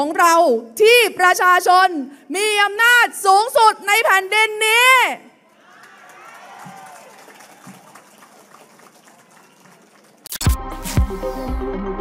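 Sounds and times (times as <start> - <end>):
electronic music: 10.3 - 12.0.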